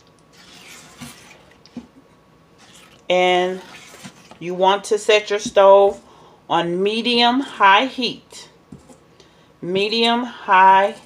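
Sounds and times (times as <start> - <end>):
spatula stirring liquid: 0.0 - 2.0, 2.6 - 4.4.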